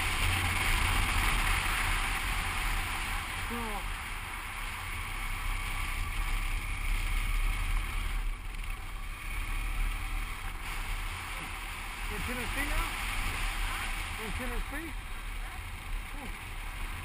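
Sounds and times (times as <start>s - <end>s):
motorcycle engine and road noise: 0.0s - 17.0s.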